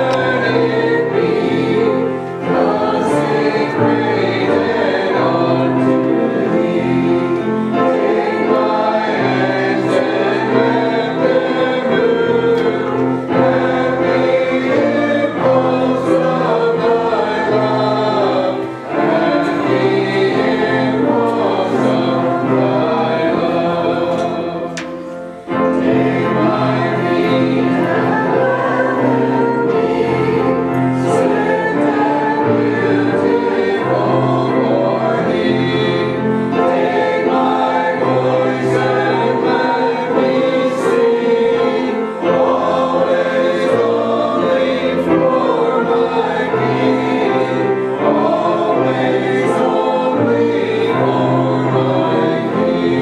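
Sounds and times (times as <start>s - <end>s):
congregation singing a hymn: 0.0s - 53.0s.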